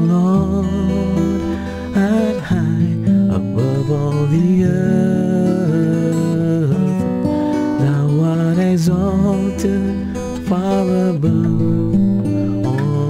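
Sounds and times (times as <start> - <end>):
acoustic guitar: 0.0 - 13.0
man singing: 0.0 - 13.0.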